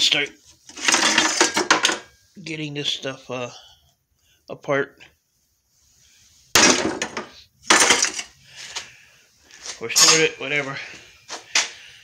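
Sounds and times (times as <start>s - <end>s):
metal scrap clattering: 0.7s - 2.1s, 6.6s - 8.3s, 9.9s - 10.4s.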